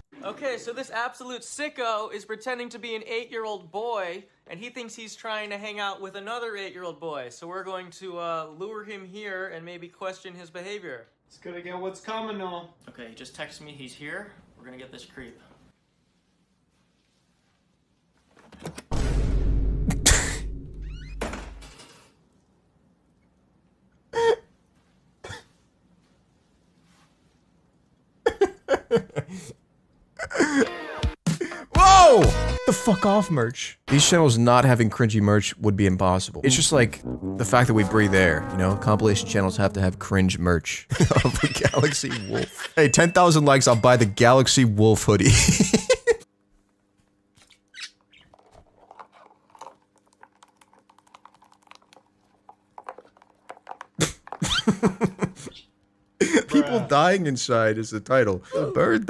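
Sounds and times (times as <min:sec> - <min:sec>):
person's voice bursts: 0:36.3 - 0:40.8, 0:58.5 - 0:59.0.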